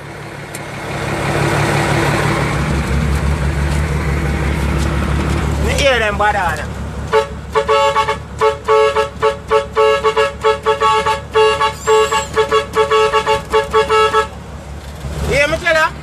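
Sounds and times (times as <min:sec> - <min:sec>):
truck engine running: 0:00.0 - 0:16.0
truck air horn blasts: 0:07.1 - 0:14.4.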